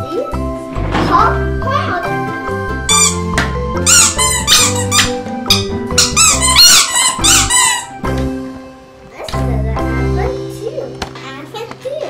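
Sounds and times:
background music with bass line: 0.4 - 10.3
rubber squeeze toys squeaking: 2.8 - 8.2.

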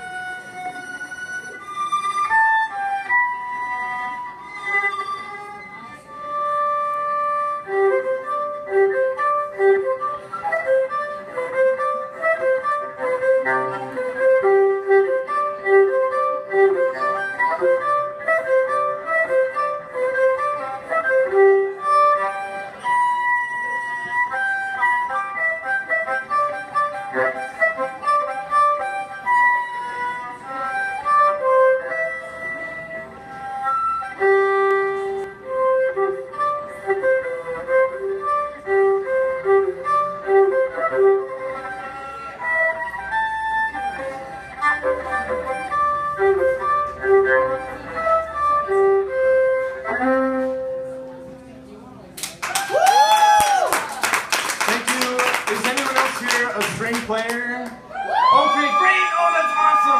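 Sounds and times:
solo violin playing harmonics: 0.0 - 51.7.

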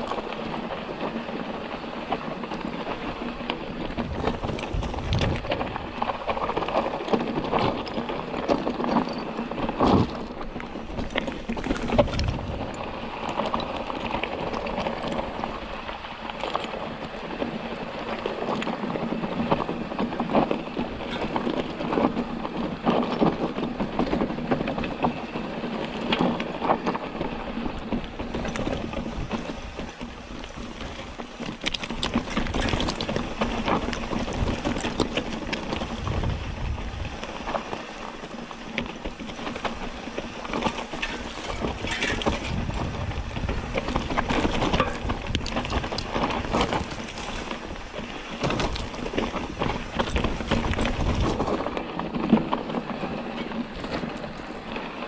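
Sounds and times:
bike clicking and rattling: 0.0 - 55.0
tyres crunching on gravel: 0.0 - 55.0.

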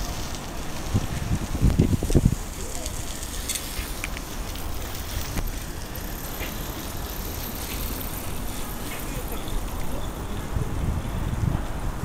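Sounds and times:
distant traffic rumble: 0.0 - 12.0
faint far-off voices: 5.4 - 11.7.

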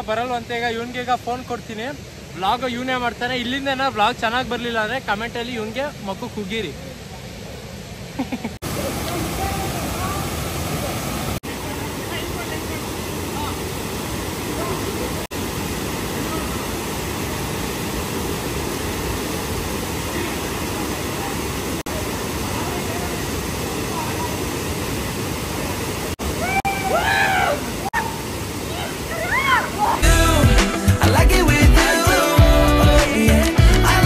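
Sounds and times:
waterfall rushing into pool: 0.0 - 34.0.

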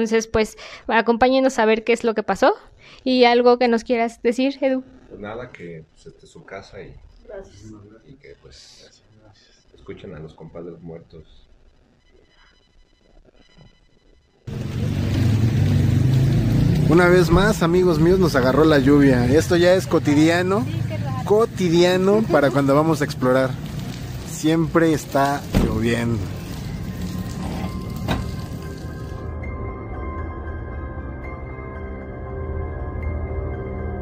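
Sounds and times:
rain falling: 14.5 - 29.3
tyres on wet street: 14.5 - 29.3
background music: 15.1 - 34.0
low rumble from car: 25.4 - 29.2.

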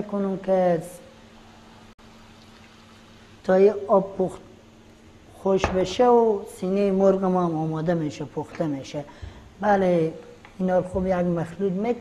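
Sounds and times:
faint steady hiss: 0.0 - 12.0
low electrical hum: 0.0 - 12.0.

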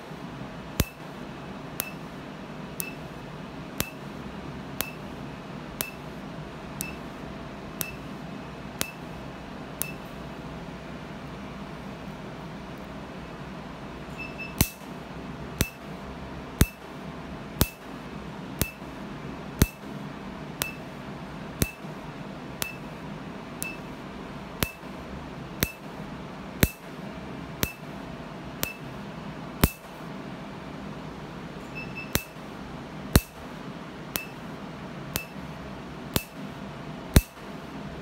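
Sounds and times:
laser handpiece snapping: 0.8 - 1.1, 1.8 - 2.1, 2.8 - 3.1, 3.8 - 4.1, 4.8 - 5.1, 5.8 - 6.1, 6.8 - 7.1, 7.8 - 8.1, 8.8 - 9.1, 9.8 - 10.1, 14.6 - 14.9, 15.6 - 15.9, 16.6 - 16.9, 17.6 - 17.9, 18.6 - 18.9, 19.6 - 19.9, 20.6 - 20.9, 21.6 - 21.9, 22.6 - 22.9, 24.6 - 24.9, 25.6 - 25.9, 26.6 - 26.9, 27.6 - 27.9, 28.6 - 28.9, 29.6 - 29.9, 32.1 - 32.4, 33.2 - 33.4, 34.2 - 34.4, 35.2 - 35.4, 36.2 - 36.4, 37.2 - 37.5.

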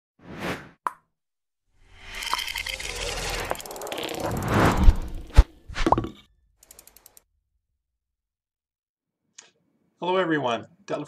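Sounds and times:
whoosh: 1.9 - 5.9.

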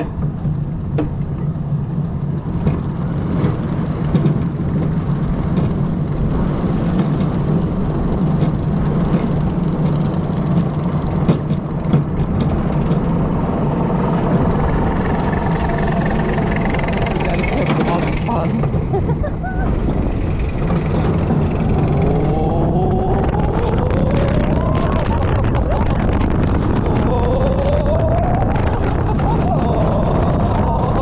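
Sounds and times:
light clicks from train: 0.0 - 1.5, 2.6 - 13.2.

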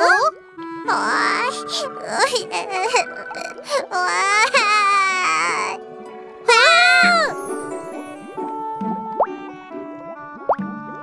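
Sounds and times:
children's background music: 0.0 - 11.0.

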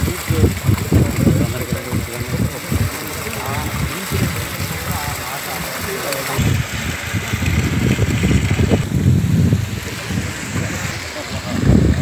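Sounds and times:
voices talking: 0.0 - 7.5
wind buffeting microphone: 0.0 - 12.0.

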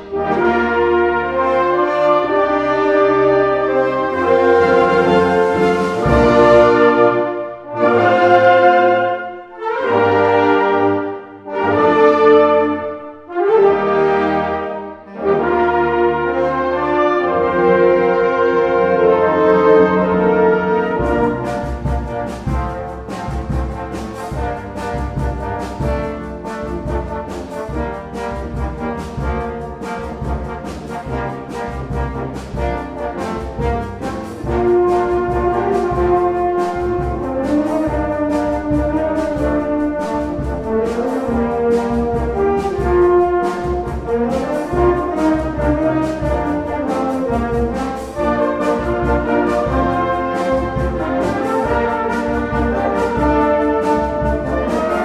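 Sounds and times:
wind band playing: 0.0 - 55.0.

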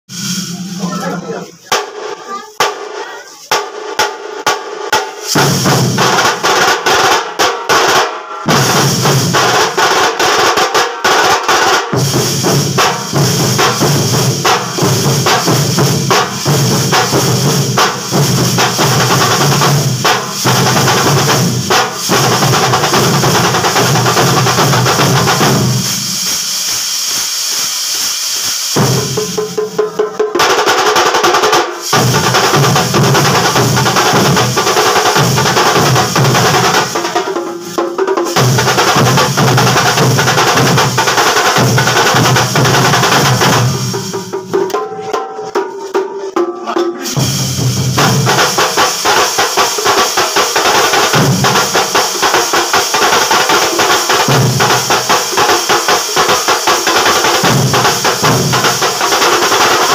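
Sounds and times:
drum troupe playing fast rhythm: 0.1 - 26.5, 28.8 - 59.9.

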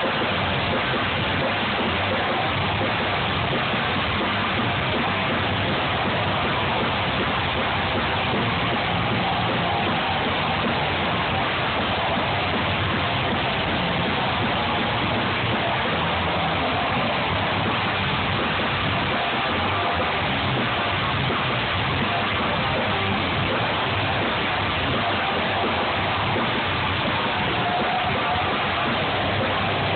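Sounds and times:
distorted electric guitar: 0.0 - 29.9.

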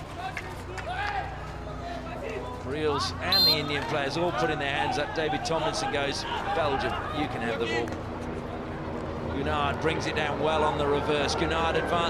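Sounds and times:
crowd rumble: 0.0 - 12.0.

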